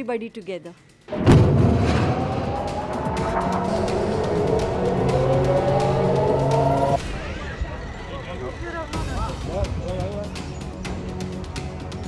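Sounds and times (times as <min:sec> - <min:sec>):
dramatic background music: 0:00.0 - 0:12.0
warning siren winding up: 0:02.1 - 0:07.0.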